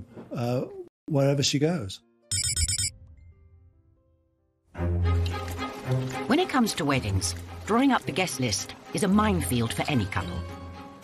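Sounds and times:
rapid high digital beeps: 2.3s - 2.9s.

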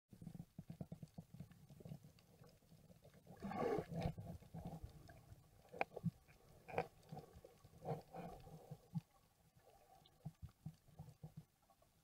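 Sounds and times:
muffled underwater knocks and clicks: 0.2s - 12.0s.

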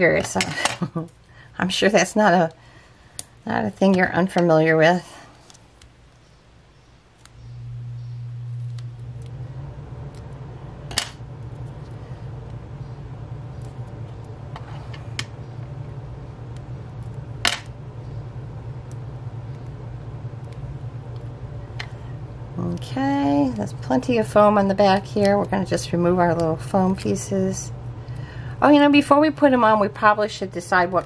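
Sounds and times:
steady low hum: 0.0s - 31.0s.

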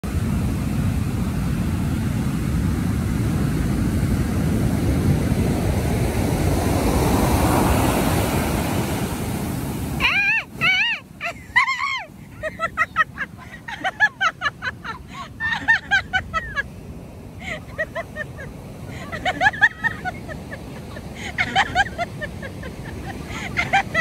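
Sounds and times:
waves breaking on beach: 0.0s - 24.0s.

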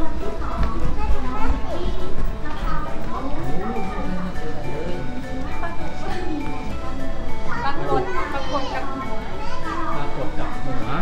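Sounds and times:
background music: 0.0s - 11.0s
children chattering and calling: 0.0s - 11.0s.

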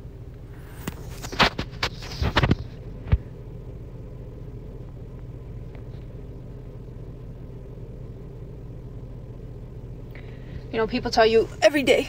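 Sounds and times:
car cabin engine hum: 0.0s - 12.0s.

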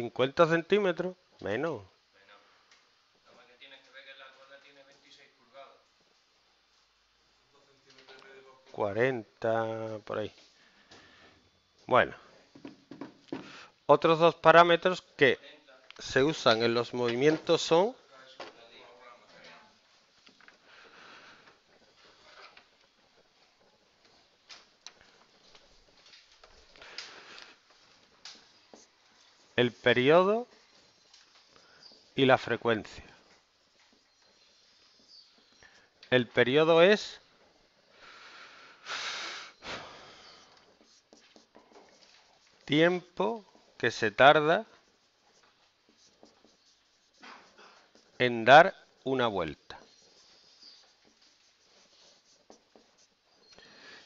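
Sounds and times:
eraser rubbing on whiteboard: 20.1s - 38.1s, 38.8s - 54.0s.

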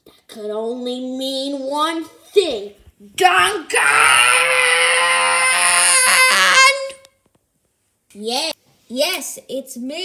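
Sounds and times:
person crying out: 3.7s - 7.0s.

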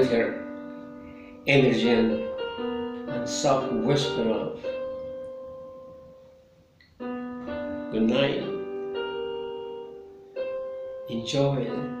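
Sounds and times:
electronic keyboard note: 0.0s - 12.0s.

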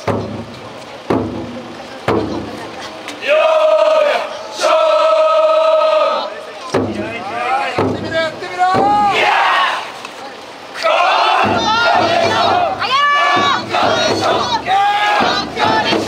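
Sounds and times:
group shouting loud cries: 3.2s - 6.4s, 8.6s - 10.0s, 10.8s - 16.0s.

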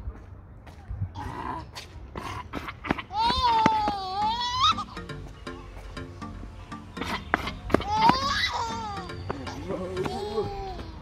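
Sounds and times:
baby laughing squeal: 3.1s - 5.0s, 7.8s - 11.0s.

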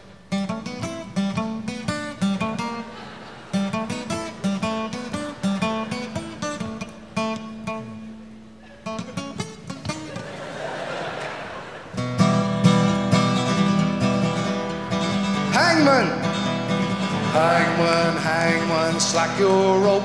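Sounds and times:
acoustic guitar picking melody: 0.0s - 20.0s.

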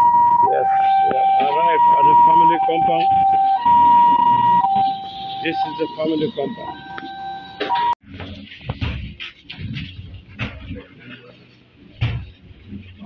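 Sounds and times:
two-tone siren: 0.0s - 8.0s
people talking: 0.4s - 3.4s, 5.4s - 6.8s.

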